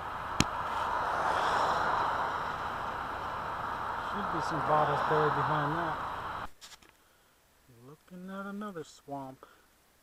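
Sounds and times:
steady rushing noise: 0:00.0 - 0:06.6.

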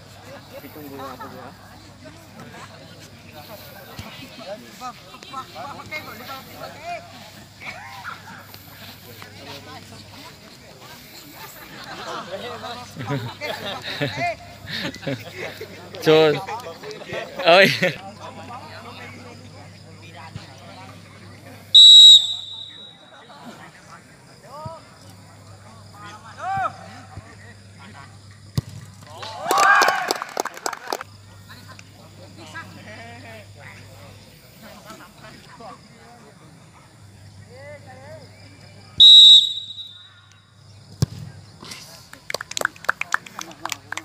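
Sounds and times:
spectators talking quietly: 0:00.0 - 0:44.0
referee's whistle: 0:21.8 - 0:23.1, 0:39.0 - 0:40.4.

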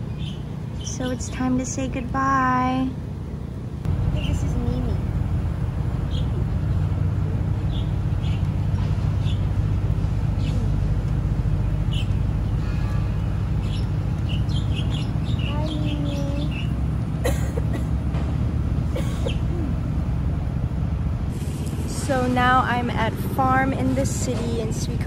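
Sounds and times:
birds chirping: 0:00.0 - 0:21.2
low mechanical hum: 0:00.0 - 0:25.0.

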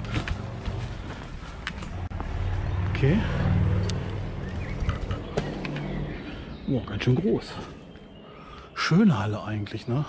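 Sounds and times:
footsteps on concrete floor: 0:00.0 - 0:02.6
vehicle engine humming: 0:00.0 - 0:08.2.

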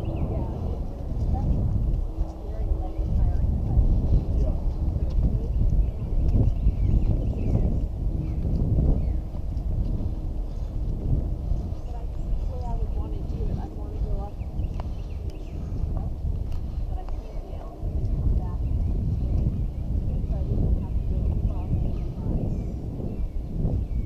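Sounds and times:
footsteps on dirt trail: 0:00.0 - 0:24.0
wind rumbling on microphone: 0:00.0 - 0:24.0.

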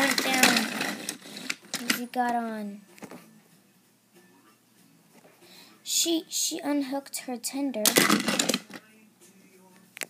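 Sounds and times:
plastic toy train pieces rattling: 0:00.0 - 0:02.0, 0:07.9 - 0:08.8.

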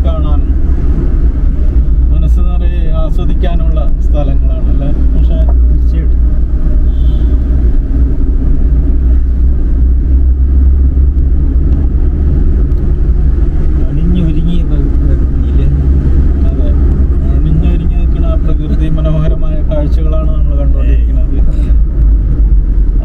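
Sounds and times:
people talking: 0:00.0 - 0:00.5, 0:01.6 - 0:06.2, 0:13.8 - 0:15.8, 0:16.4 - 0:21.8
car engine and tyres rumbling: 0:00.0 - 0:23.0.

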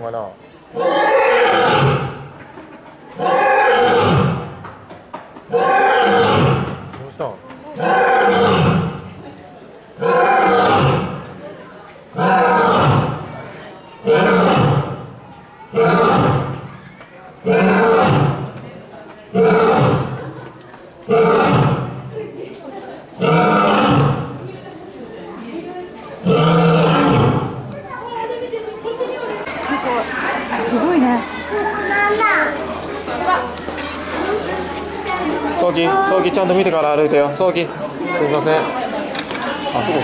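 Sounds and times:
lioness roaring: 0:00.7 - 0:02.2, 0:03.2 - 0:04.5, 0:05.5 - 0:06.7, 0:07.8 - 0:09.1, 0:10.0 - 0:11.3, 0:12.2 - 0:13.3, 0:14.0 - 0:15.0, 0:15.7 - 0:16.6, 0:17.4 - 0:18.5, 0:19.3 - 0:20.3, 0:21.1 - 0:22.0, 0:23.2 - 0:24.4, 0:26.2 - 0:27.7.

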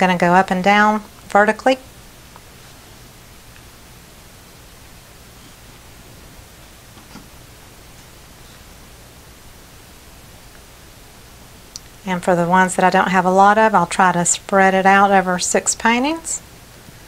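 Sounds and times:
quiet recording hiss: 0:00.0 - 0:17.0.

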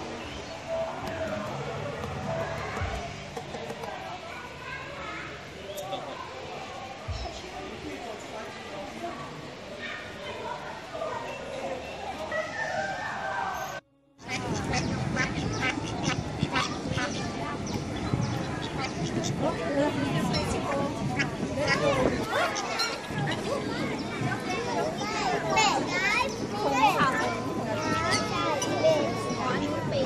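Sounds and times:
children chattering and calling out: 0:00.0 - 0:30.0.

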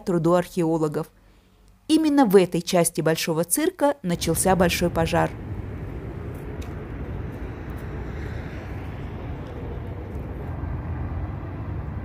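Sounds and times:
distant traffic rumble: 0:04.1 - 0:12.0.

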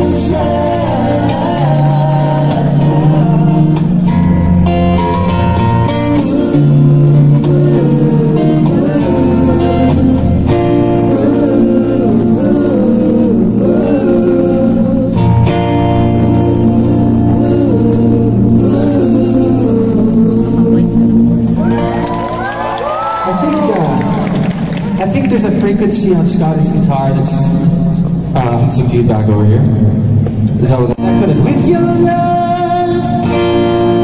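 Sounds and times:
men singing together: 0:00.0 - 0:05.1, 0:05.8 - 0:21.8, 0:31.5 - 0:34.0
acoustic guitar strumming: 0:00.0 - 0:13.1.

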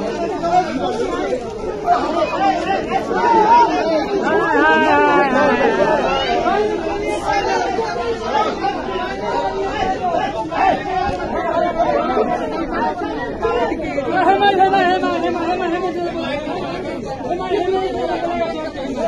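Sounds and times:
crowd talking and shouting: 0:00.0 - 0:19.0.

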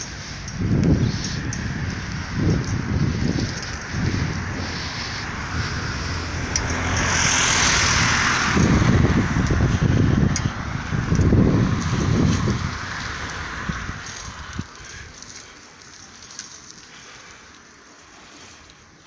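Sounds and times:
wind buffeting microphone: 0:00.0 - 0:18.7.

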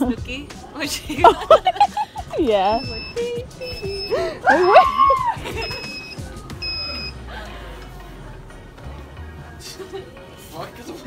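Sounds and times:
short electronic beep: 0:02.8 - 0:04.9, 0:05.6 - 0:07.2.

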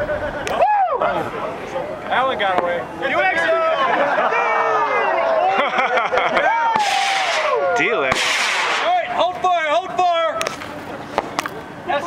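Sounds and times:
people whooping and yelling: 0:00.0 - 0:01.8, 0:03.0 - 0:09.1
sharp pops: 0:06.8 - 0:07.5, 0:08.1 - 0:08.9
flares hissing: 0:08.1 - 0:08.9.

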